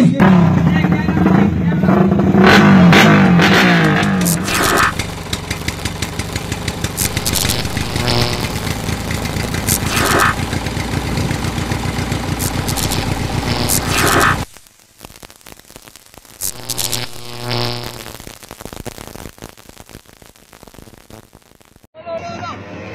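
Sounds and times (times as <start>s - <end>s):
motorcycle engine revving and running: 0.0s - 14.5s.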